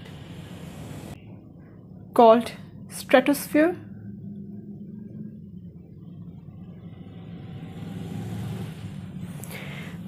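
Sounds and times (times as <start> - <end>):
low background rumble: 0.0 - 10.0
vehicle passing outside: 5.9 - 10.0.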